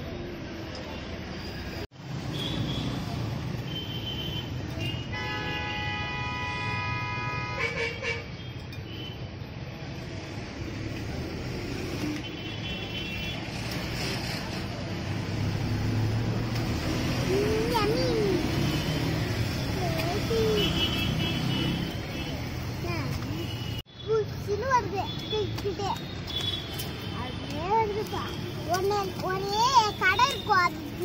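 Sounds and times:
street traffic rumble: 0:00.0 - 0:31.0.

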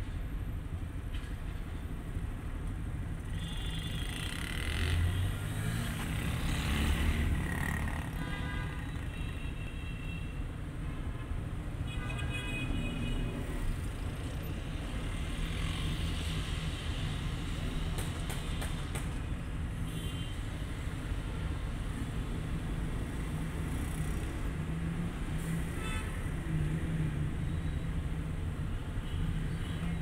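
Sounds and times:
street traffic: 0:00.0 - 0:30.0.

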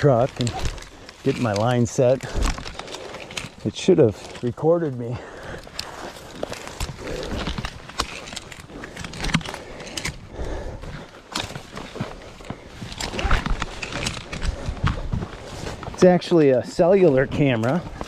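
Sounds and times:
rope rustling and scraping: 0:00.0 - 0:18.0.

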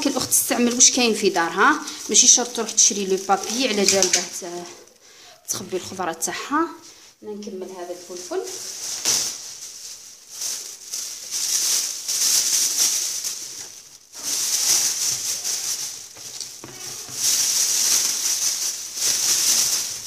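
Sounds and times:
plastic bag crinkling: 0:00.0 - 0:20.0.

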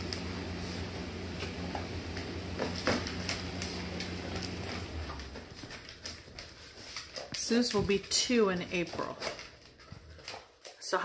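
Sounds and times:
dog crunching dry kibble: 0:02.1 - 0:10.9.

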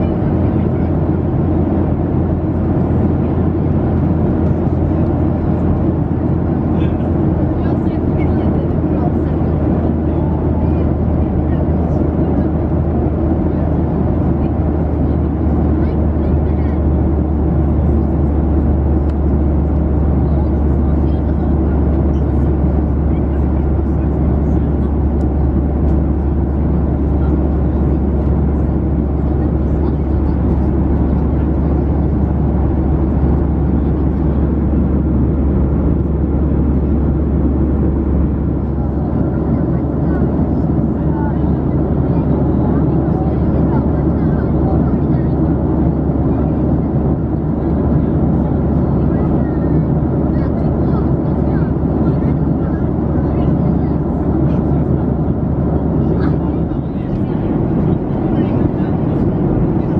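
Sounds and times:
airliner cabin noise: 0:00.0 - 0:59.9.

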